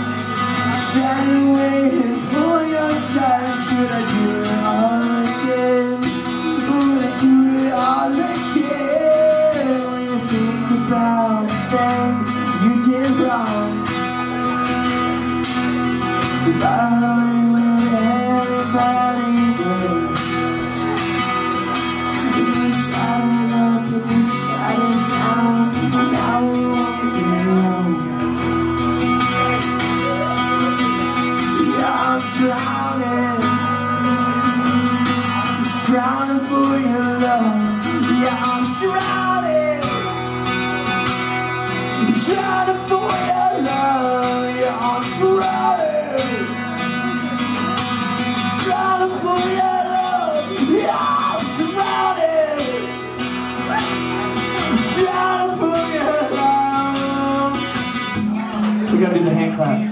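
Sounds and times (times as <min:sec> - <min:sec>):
man singing: 0:00.0 - 0:28.7, 0:29.3 - 0:59.9
acoustic guitar strumming chords: 0:00.0 - 0:59.9.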